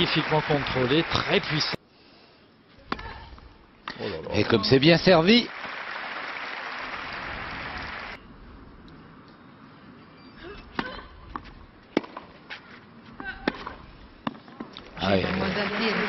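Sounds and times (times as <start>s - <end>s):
crowd applause: 0.0s - 1.8s, 5.3s - 8.2s, 15.0s - 16.0s
tennis racquet striking ball: 10.7s - 12.3s, 13.4s - 14.7s.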